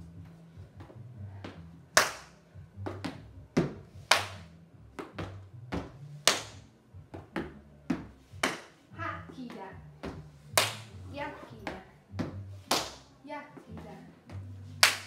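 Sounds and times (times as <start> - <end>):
faint music with bass line: 0.0 - 15.0
tap shoes stomping on wooden floor: 2.8 - 4.4, 5.0 - 13.0.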